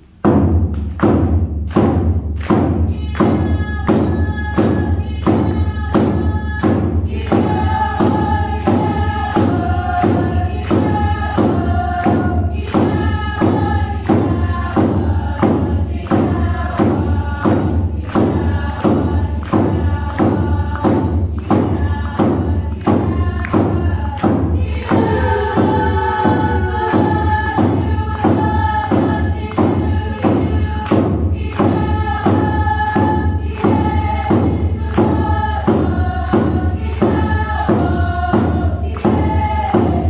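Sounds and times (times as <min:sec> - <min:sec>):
drum beaten steadily: 0:00.2 - 0:40.0
group singing in unison: 0:01.7 - 0:40.0.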